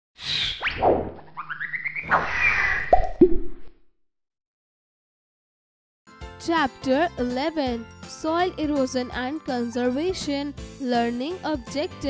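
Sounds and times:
quick bloops dropping in pitch: 0:02.9 - 0:03.7.

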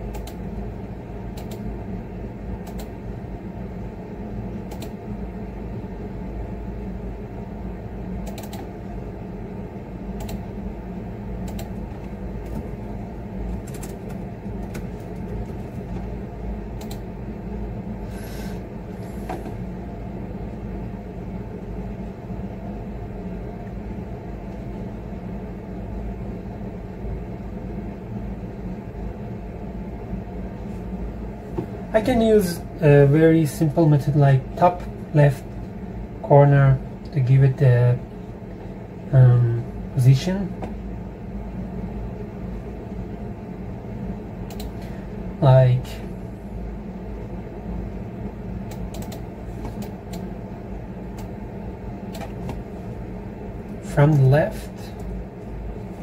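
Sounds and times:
appliance humming: 0:00.0 - 0:56.0
keyboard and mouse clicks: 0:00.1 - 0:00.4, 0:01.4 - 0:01.6, 0:02.6 - 0:02.9, 0:04.7 - 0:05.0, 0:08.2 - 0:08.7, 0:10.2 - 0:10.4, 0:11.4 - 0:11.8, 0:13.6 - 0:15.6, 0:16.8 - 0:17.0, 0:44.5 - 0:44.8, 0:48.7 - 0:50.3, 0:52.1 - 0:52.6.

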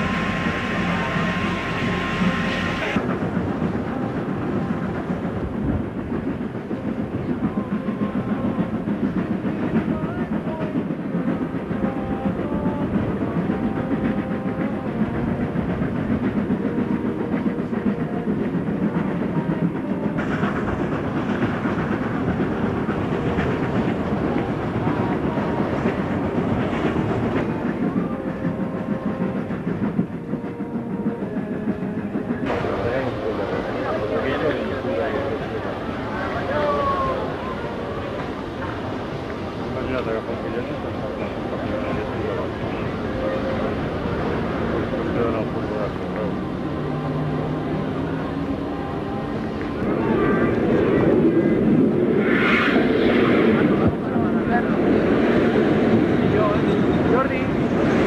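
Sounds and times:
steam locomotive exhaust: 0:00.0 - 0:58.0
train wheels clattering over rails: 0:00.0 - 0:58.0.

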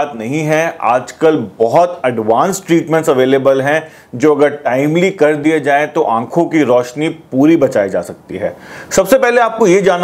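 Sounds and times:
man speaking: 0:00.0 - 0:10.0
breathy intake of breath: 0:08.6 - 0:08.9.

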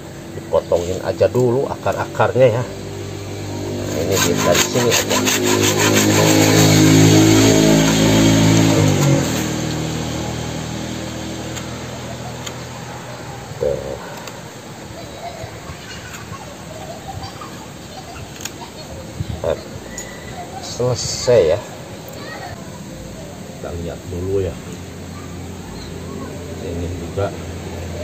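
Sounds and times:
motor drone: 0:01.8 - 0:13.9
blade cutting roots clicks: 0:11.5 - 0:11.8.

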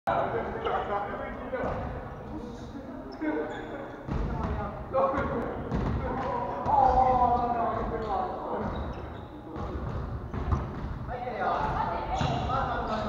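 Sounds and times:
voices echoing in gymnasium: 0:00.1 - 0:13.0.

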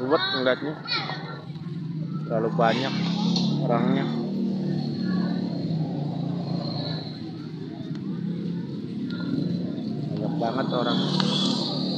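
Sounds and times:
scooter engines running: 0:00.0 - 0:11.9
street crowd voices: 0:00.0 - 0:11.9.

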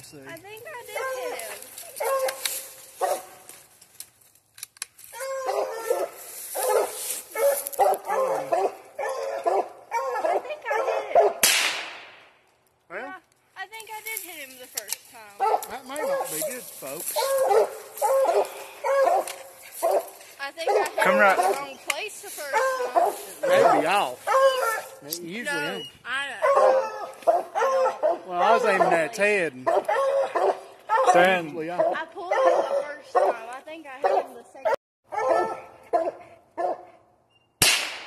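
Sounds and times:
hounds barking: 0:00.8 - 0:03.5, 0:05.2 - 0:11.4, 0:15.4 - 0:37.0
loud gunshot: 0:11.4 - 0:12.3, 0:37.6 - 0:38.0.

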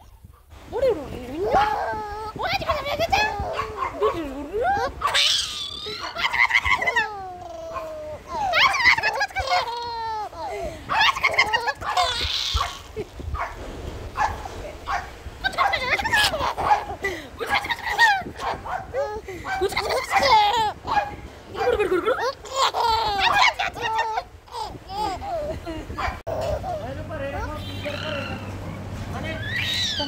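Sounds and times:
baby laughing and squealing: 0:01.4 - 0:13.3, 0:15.4 - 0:28.4, 0:29.3 - 0:30.0.

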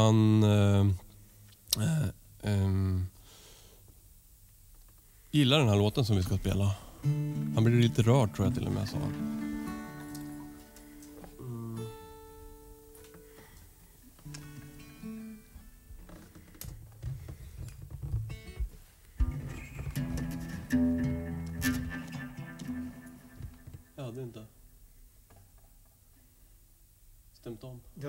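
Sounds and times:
acoustic guitar playing: 0:06.9 - 0:16.4, 0:18.1 - 0:24.2
harp guitar playing: 0:07.1 - 0:13.0, 0:19.2 - 0:24.0.

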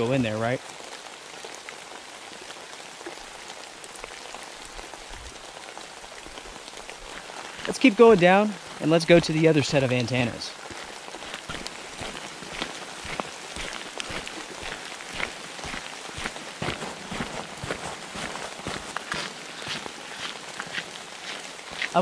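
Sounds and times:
steady rain: 0:00.0 - 0:22.0
raindrop taps: 0:06.3 - 0:21.0
footsteps on wet gravel: 0:06.3 - 0:22.0.

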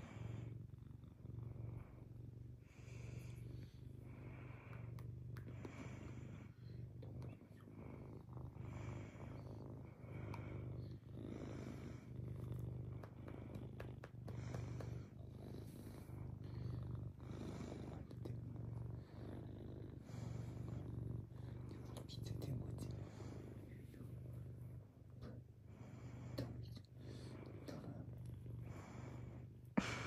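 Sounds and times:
cat purring: 0:00.0 - 0:30.0.

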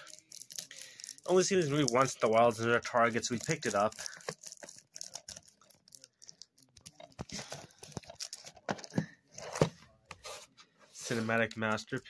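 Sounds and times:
cellophane crackling and ripping: 0:00.0 - 0:08.5.

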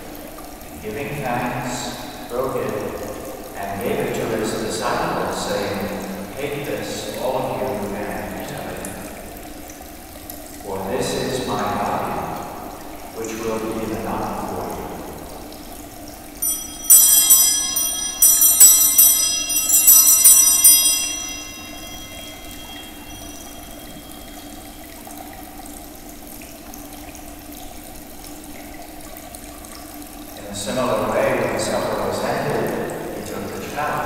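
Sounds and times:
small hand bells ringing: 0:16.4 - 0:25.1.

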